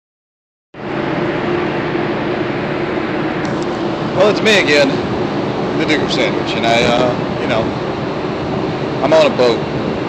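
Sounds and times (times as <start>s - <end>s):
ship machinery hum: 0.8s - 10.0s.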